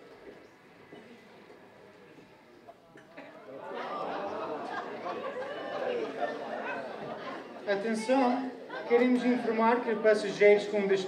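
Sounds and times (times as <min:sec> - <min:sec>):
many voices chattering: 0:00.0 - 0:11.0.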